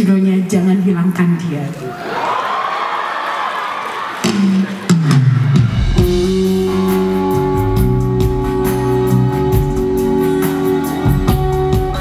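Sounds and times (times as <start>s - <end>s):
bass and drums: 4.2s - 12.0s
guitar notes: 6.0s - 12.0s.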